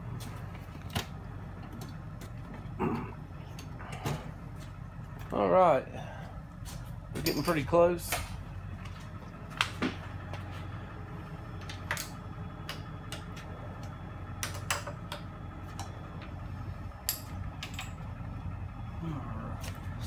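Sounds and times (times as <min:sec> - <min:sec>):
low workshop hum: 0:00.0 - 0:20.0.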